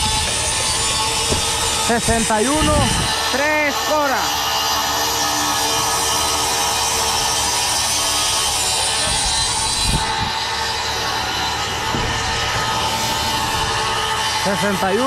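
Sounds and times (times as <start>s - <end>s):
machine running: 0.0s - 15.0s
low knocks: 11.9s - 12.5s.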